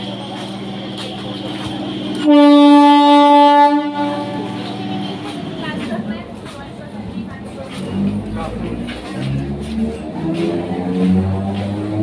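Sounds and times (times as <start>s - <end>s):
train horn blast: 1.8s - 5.3s.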